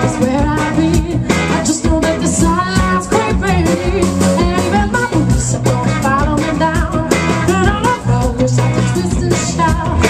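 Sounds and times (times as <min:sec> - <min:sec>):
drum kit beat: 0:00.0 - 0:10.0
electric guitars: 0:00.0 - 0:10.0
woman singing: 0:00.0 - 0:10.0.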